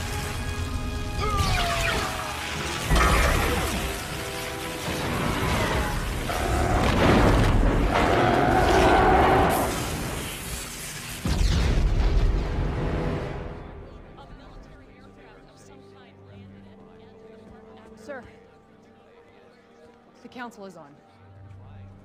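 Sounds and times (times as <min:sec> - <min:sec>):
lightning blasts and explosions: 0:00.0 - 0:13.9
film score music: 0:00.0 - 0:22.0
loud booms: 0:11.2 - 0:13.0.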